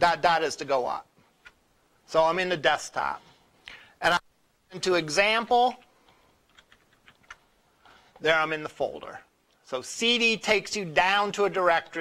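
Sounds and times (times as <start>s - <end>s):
faint computer keyboard typing: 5.7s - 8.0s.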